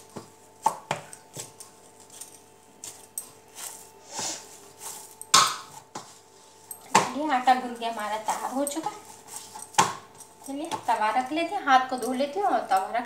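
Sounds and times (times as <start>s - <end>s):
dough knocking on steel plate: 5.3s - 6.1s.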